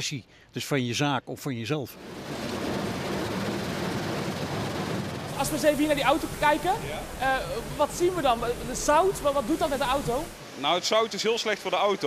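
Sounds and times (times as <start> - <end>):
car wash spraying water: 2.0 - 12.0.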